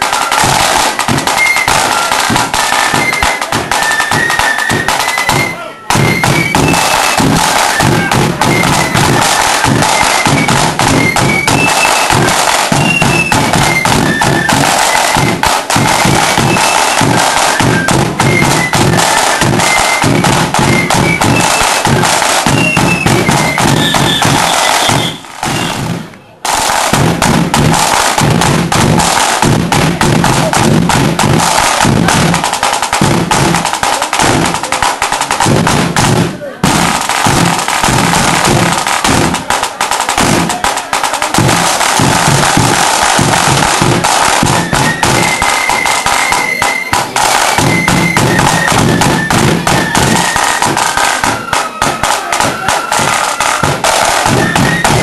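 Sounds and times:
high flute melody: 0.0s - 26.4s, 37.4s - 55.0s
rolling snare drums: 0.0s - 55.0s
bass drum: 0.4s - 26.1s, 26.8s - 45.4s, 47.0s - 55.0s.

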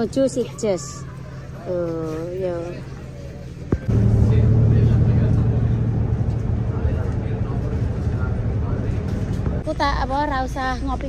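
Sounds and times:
bus engine drone: 0.0s - 11.0s.

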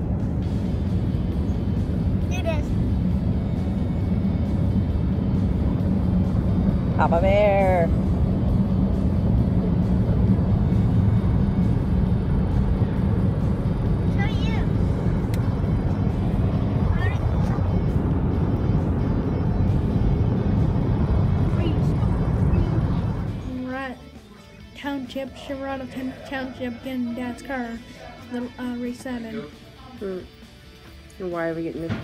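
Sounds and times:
road and engine noise in car cabin: 0.0s - 30.5s.

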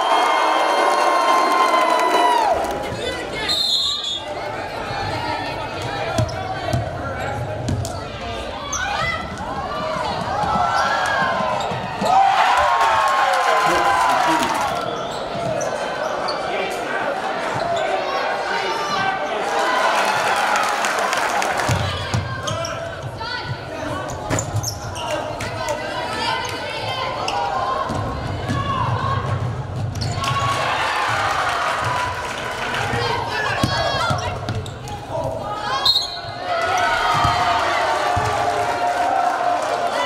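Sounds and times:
voices of players and crowd: 0.0s - 40.0s.

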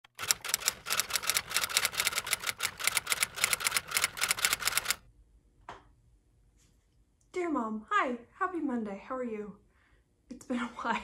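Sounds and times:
rapid sharp clicks: 0.0s - 5.0s.

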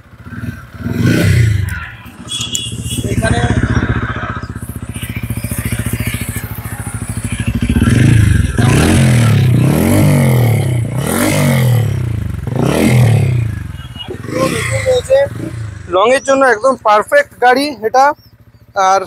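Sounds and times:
motorcycle engine idling and revving: 0.0s - 19.0s.

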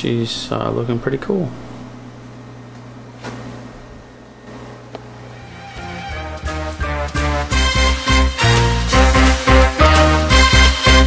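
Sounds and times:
low electrical hum: 0.0s - 6.5s
music: 5.3s - 11.0s.

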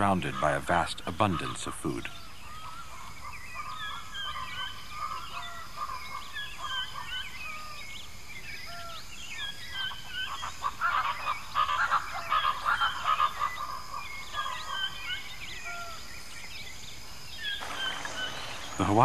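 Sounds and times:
birds chirping and whistling: 0.0s - 19.0s.

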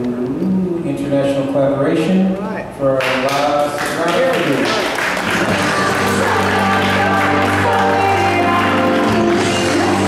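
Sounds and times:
music with held notes: 5.4s - 10.0s.

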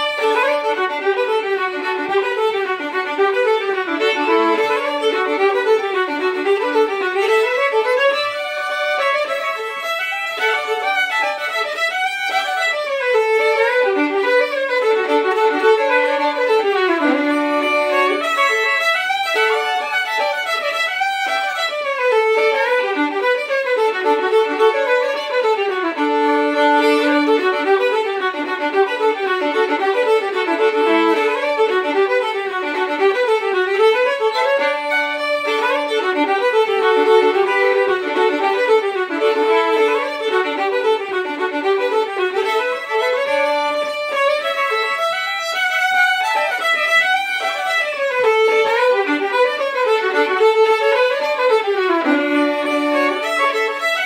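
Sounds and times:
two fiddles playing a tune: 0.0s - 54.0s.

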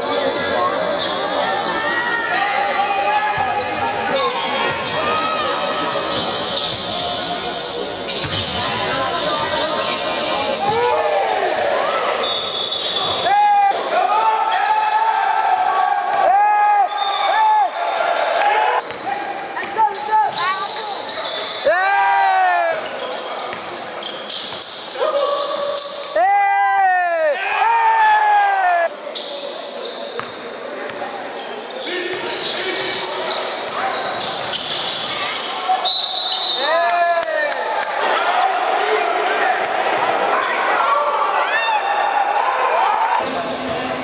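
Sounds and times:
voices in a gym: 0.0s - 44.0s
sneakers squeaking: 0.3s - 1.8s, 3.0s - 13.8s, 16.9s - 21.7s, 22.7s - 26.2s, 29.1s - 36.6s
referee's whistle: 12.2s - 13.3s, 16.8s - 17.5s, 35.8s - 36.7s.

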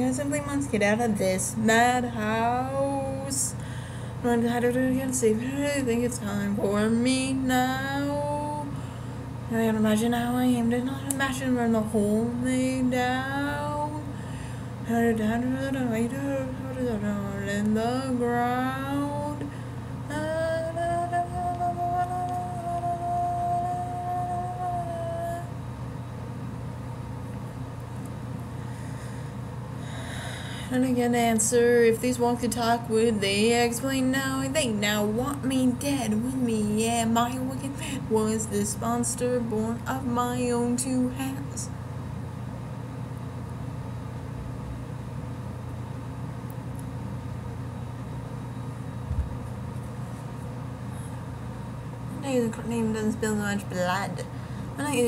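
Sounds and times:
steady low hum: 0.0s - 55.0s
woman singing long note: 4.2s - 8.8s, 20.1s - 25.6s.

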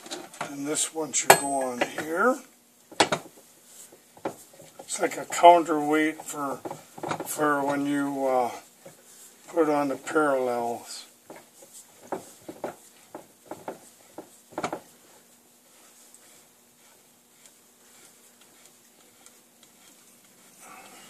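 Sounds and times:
faint room noise: 0.0s - 21.0s.

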